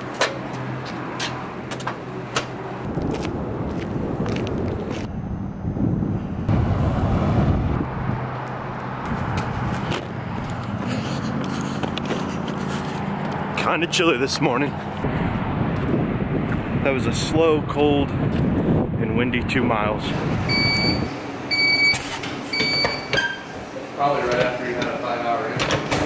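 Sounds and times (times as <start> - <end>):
footsteps on concrete: 0.0 - 5.1, 8.4 - 13.6
loud low rumbling noise: 2.6 - 9.7, 15.0 - 20.5.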